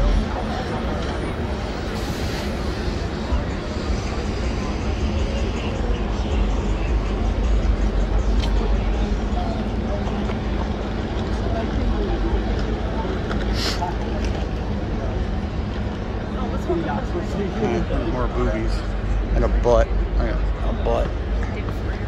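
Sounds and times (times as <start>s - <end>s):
pedestrians chatter: 0.0s - 22.0s
traffic noise: 0.0s - 22.0s.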